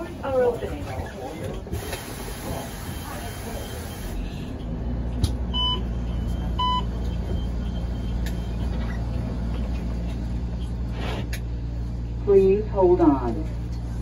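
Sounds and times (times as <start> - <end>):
bus humming: 0.0 - 14.0
short electronic beeps: 5.5 - 9.1.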